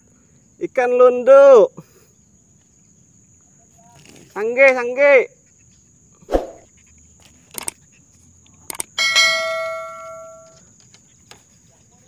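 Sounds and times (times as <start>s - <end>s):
light clicks: 7.5s - 7.8s, 8.4s - 8.9s
bell chime: 9.0s - 10.6s.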